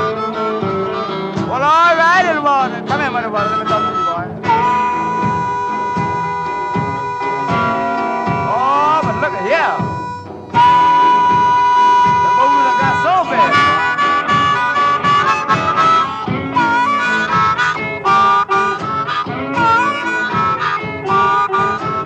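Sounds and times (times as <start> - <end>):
blues harmonica solo: 0.0 - 22.0
guitar rhythm: 0.0 - 22.0.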